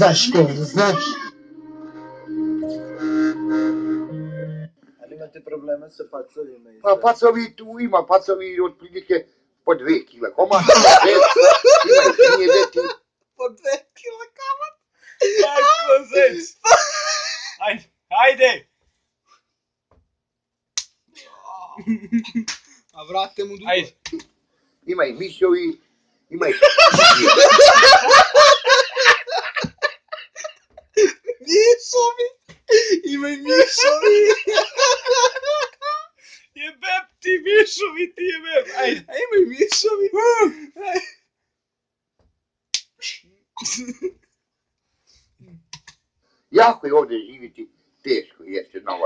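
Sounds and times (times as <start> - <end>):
stifled laughter: 10.5 - 13.0, 15.2 - 17.6, 21.8 - 22.5, 26.5 - 31.5, 32.7 - 36.1, 38.2 - 39.7
hand slapping a face: 22.4 - 22.7
hand slapping cheek: 22.4 - 22.7, 42.8 - 43.0.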